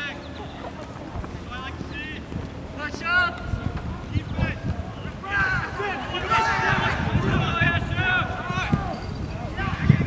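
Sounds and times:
wind rumble on microphone: 0.4s - 10.0s
distant shouts: 2.8s - 10.0s.

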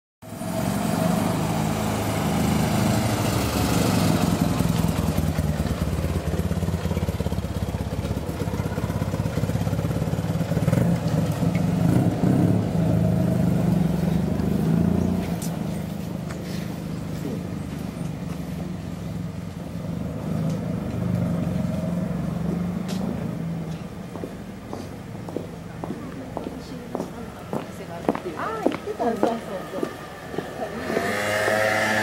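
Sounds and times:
car engine driving off: 0.2s - 24.9s, 28.9s - 32.0s.

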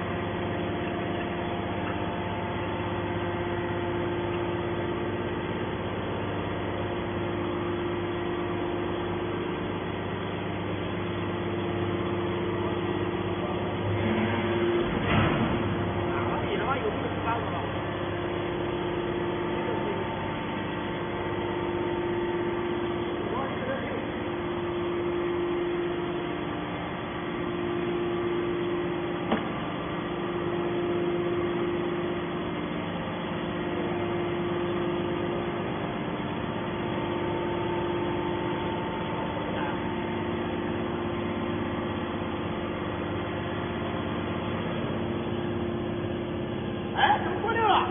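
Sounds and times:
scrap metal baler machine hum: 0.0s - 47.9s.

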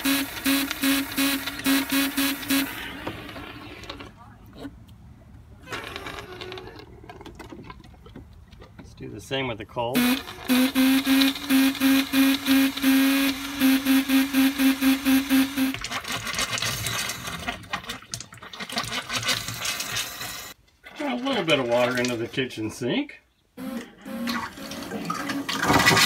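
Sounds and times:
pulsing buzz of air and water: 0.0s - 3.0s, 10.0s - 15.9s, 23.6s - 25.2s.

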